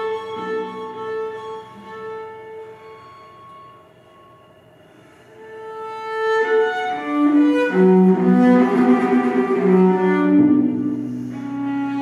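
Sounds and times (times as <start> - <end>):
cello note reverberating: 0.0 - 12.0.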